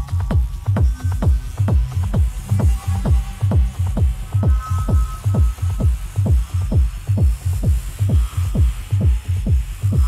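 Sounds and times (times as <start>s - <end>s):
low bass pulse: 0.0s - 10.0s
techno kick drum: 0.0s - 10.0s.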